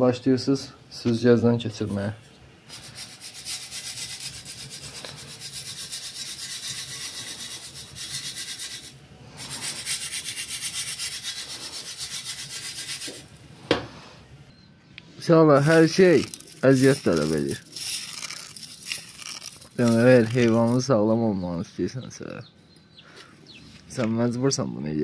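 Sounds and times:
grit rubbed through a sieve: 0:02.7 - 0:13.3, 0:15.6 - 0:20.8.

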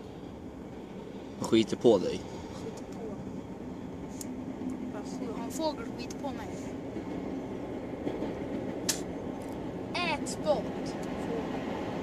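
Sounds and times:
sharp click: 0:08.8 - 0:09.1.

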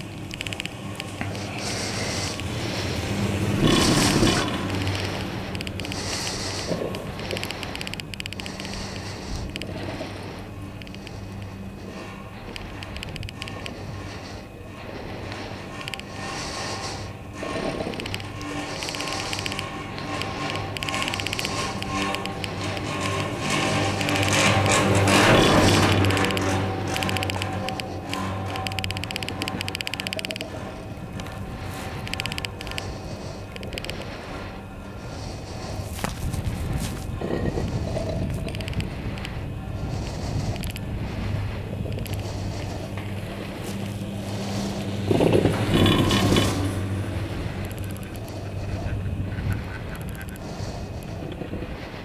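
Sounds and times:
mechanical rumble and clatter: 0:00.0 - 0:52.0
steady low hum: 0:00.0 - 0:52.0
thin mechanical squeal: 0:00.0 - 0:52.0.

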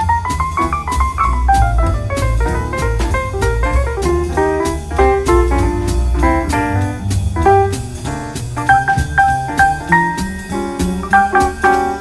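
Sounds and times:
cymbal beat: 0:00.0 - 0:12.0
jazz guitar: 0:00.0 - 0:12.0
piano: 0:00.0 - 0:12.0
walking double bass: 0:00.0 - 0:12.0.

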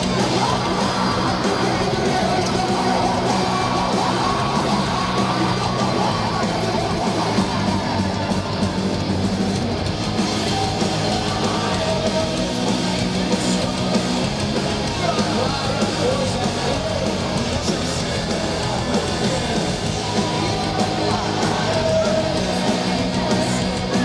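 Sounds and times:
bass guitar: 0:00.0 - 0:24.0
distorted electric guitars: 0:00.0 - 0:24.0
drums: 0:00.0 - 0:24.0
singer shouting vocals: 0:00.0 - 0:24.0.

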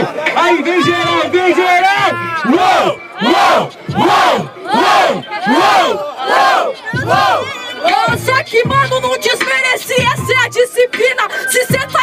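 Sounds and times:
crowd chanting in rhythm: 0:02.0 - 0:10.2.

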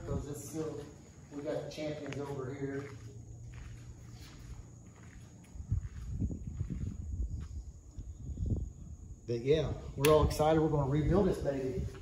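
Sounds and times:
faint steady hum: 0:00.0 - 0:12.0
footsteps thudding: 0:02.0 - 0:07.6.

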